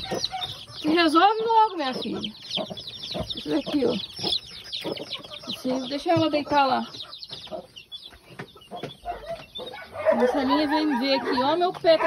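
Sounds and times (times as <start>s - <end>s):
chicks peeping: 0.0s - 12.0s
hen clucking: 0.0s - 12.0s.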